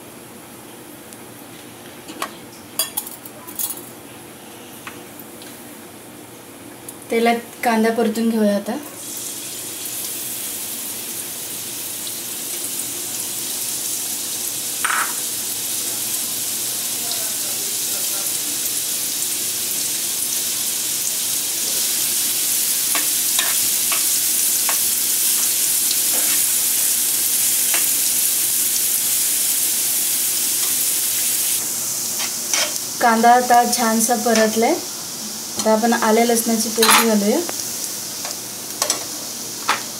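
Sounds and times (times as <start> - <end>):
onion sizzling in oil: 7.0 - 39.9.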